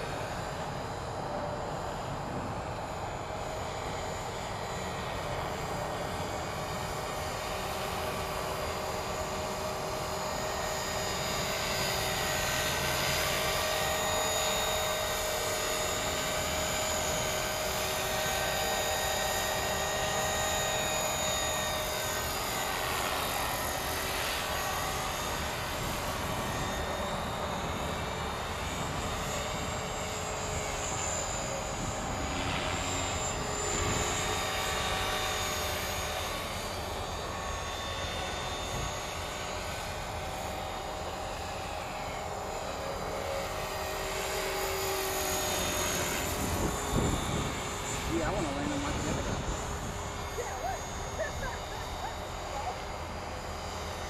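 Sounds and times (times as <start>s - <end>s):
helicopter rotor blade noise: 0.0s - 54.0s
model helicopter motor whine: 0.0s - 54.0s.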